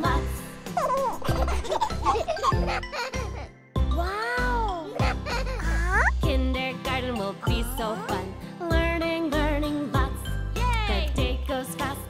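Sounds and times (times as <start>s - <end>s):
children's song backing music: 0.0s - 2.8s, 3.8s - 12.0s
high cartoon character voice: 4.0s - 4.9s.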